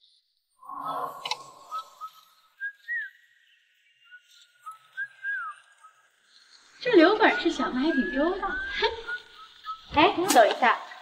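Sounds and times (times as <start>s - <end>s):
whistled notes: 0.6s - 11.0s.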